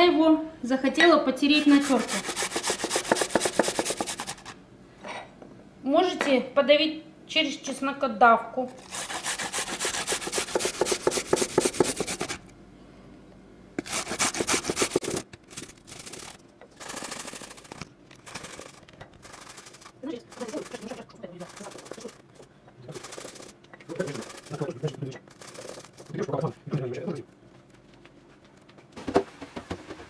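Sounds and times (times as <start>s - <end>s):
garlic grated on metal grater: 1.6s - 4.6s, 8.8s - 12.4s, 13.8s - 22.2s, 22.9s - 26.2s.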